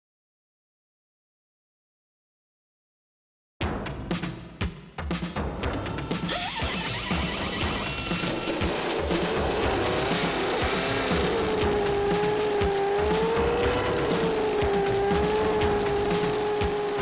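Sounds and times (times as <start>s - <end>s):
theme music with steady beat: 3.6s - 6.4s.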